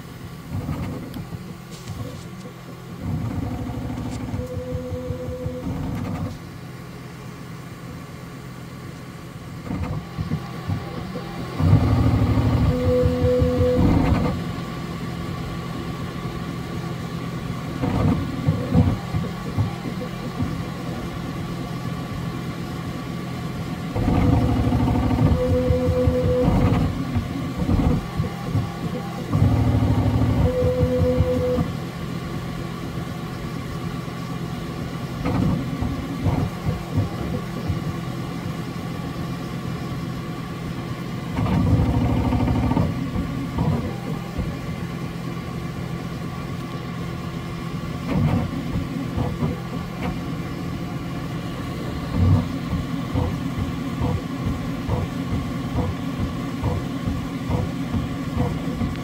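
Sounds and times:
printer motor whine: 0.0 - 8.2, 9.2 - 59.0
printer hum: 0.0 - 59.0.

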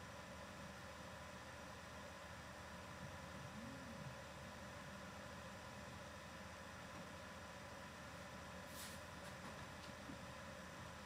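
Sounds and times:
microphone hiss: 0.0 - 11.0
faint low tone: 3.3 - 4.4.

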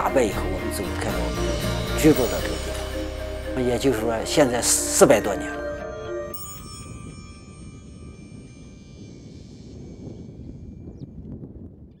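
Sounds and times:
high chime ringing: 0.0 - 11.0.

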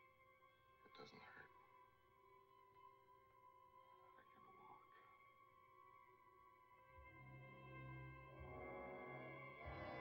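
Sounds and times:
faint film soundtrack hum: 0.0 - 10.0
faint whisper: 0.8 - 1.7, 3.9 - 5.4.

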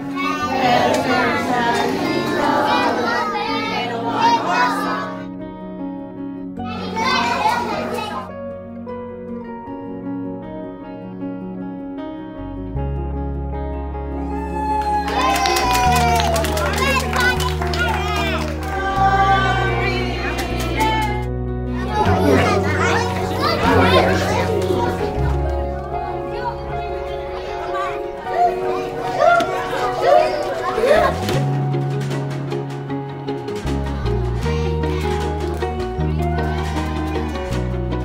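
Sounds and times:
children shouting and chattering: 0.0 - 5.3, 6.6 - 8.4, 14.2 - 38.0
plucked background music: 0.0 - 38.0.

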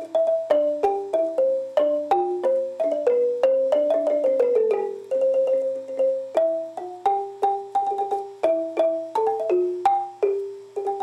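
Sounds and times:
xylophone-like mallet melody: 0.0 - 11.0.

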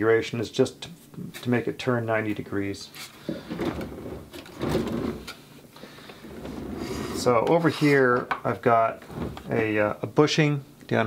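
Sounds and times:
wood scraping on bench: 3.2 - 5.4, 6.1 - 8.2, 9.0 - 9.6.

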